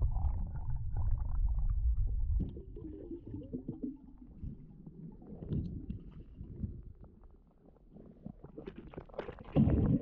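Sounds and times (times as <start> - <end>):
muffled underwater rumble: 0.0 - 10.0.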